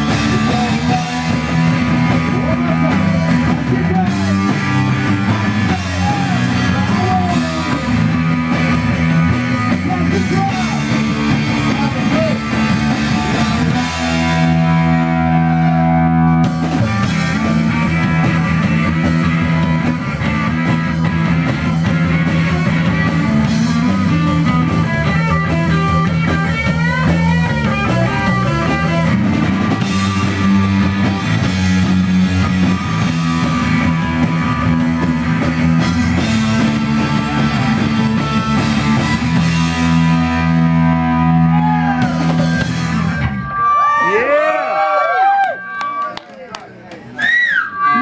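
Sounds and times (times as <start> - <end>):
punk rock band playing: 0.0 - 46.1, 47.2 - 48.0.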